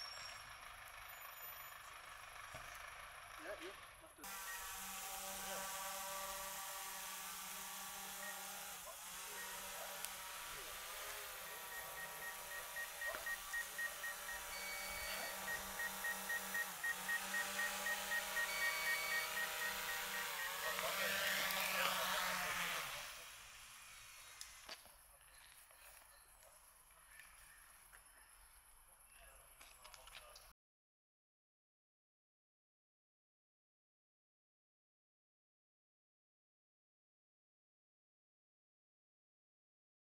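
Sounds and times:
drone propellers whining: 0:04.3 - 0:24.7
short beeps: 0:11.3 - 0:20.8.

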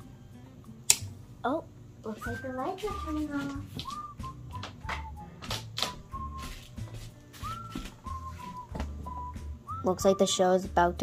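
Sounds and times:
whistled tune: 0:02.1 - 0:11.0.

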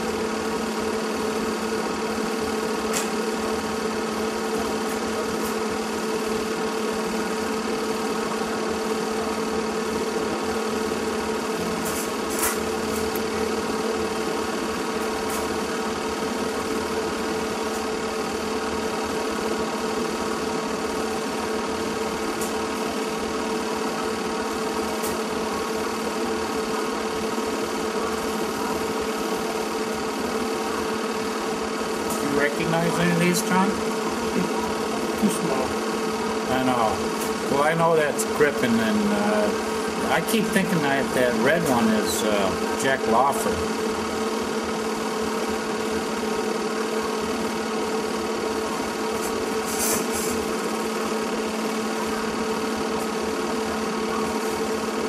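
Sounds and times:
film projector whirring: 0:00.0 - 0:55.0.

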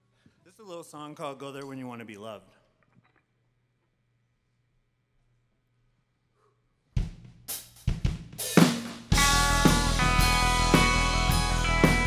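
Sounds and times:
drum kit hits: 0:07.0 - 0:12.0
rock band playing: 0:08.4 - 0:12.0.

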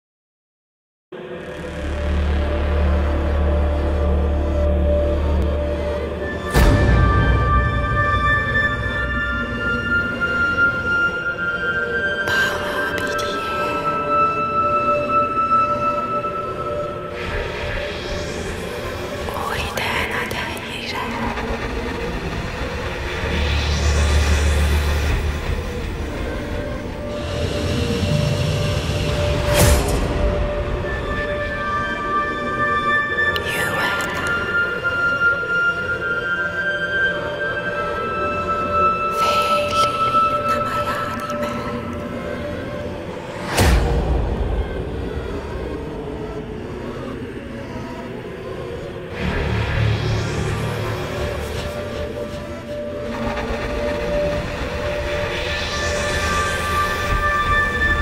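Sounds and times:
dark rumbling drone: 0:01.2 - 0:58.0.

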